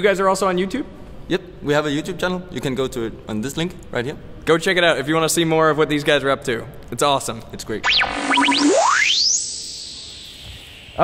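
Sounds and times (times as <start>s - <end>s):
electronic tone sweeping up: 7.8s - 11.0s.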